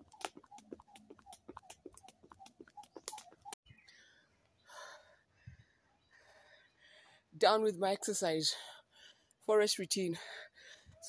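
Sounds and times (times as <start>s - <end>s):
skipping rope slapping dirt: 0.0s - 3.6s.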